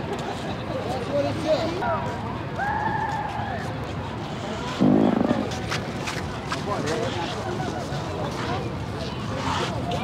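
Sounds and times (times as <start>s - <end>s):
loud buzzing fart: 4.7s - 5.6s.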